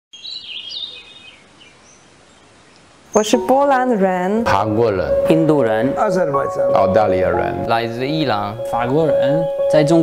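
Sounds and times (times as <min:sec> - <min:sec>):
songbird warbling: 0:00.2 - 0:03.9
outdoor hiss: 0:00.2 - 0:04.4.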